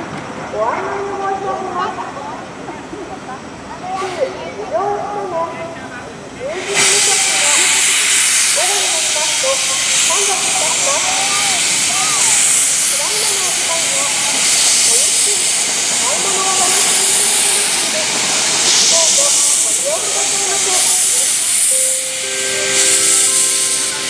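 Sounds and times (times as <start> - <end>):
faint voices: 0.0 - 24.0
steam locomotive hissing: 3.8 - 5.2, 6.1 - 24.0
steady held tones: 19.5 - 24.0.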